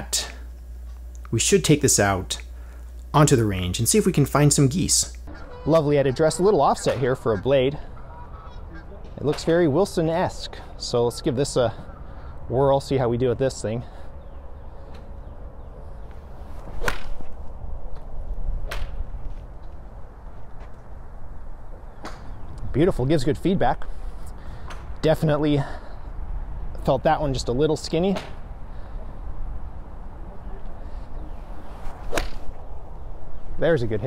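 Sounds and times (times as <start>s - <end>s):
golf club striking ball: 16.8s - 17.3s, 32.0s - 32.6s.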